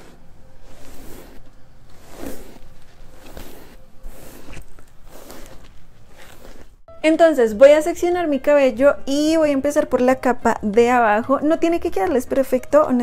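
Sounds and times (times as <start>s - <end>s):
hairbrush strokes through hair: 0.0s - 6.8s.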